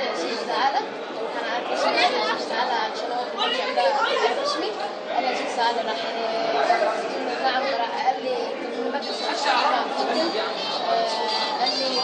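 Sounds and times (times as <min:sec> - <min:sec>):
voices chattering: 0:00.0 - 0:12.0
boy talking: 0:00.1 - 0:12.0.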